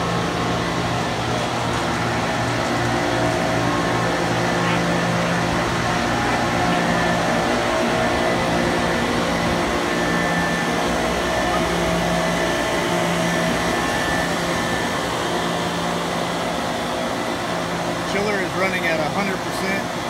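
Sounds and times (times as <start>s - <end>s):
chiller hum and rushing air: 0.0s - 20.0s.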